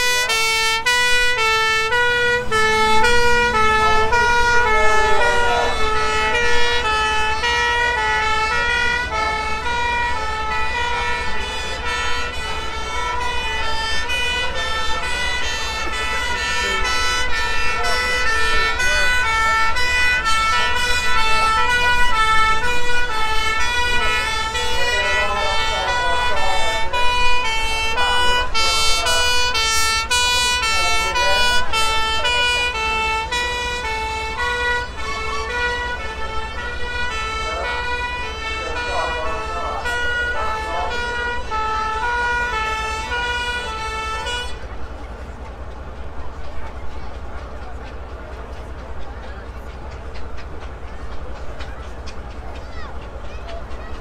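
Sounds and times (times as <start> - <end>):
fire engine two-tone siren: 0.0 - 47.2
low engine rumble: 0.0 - 54.0.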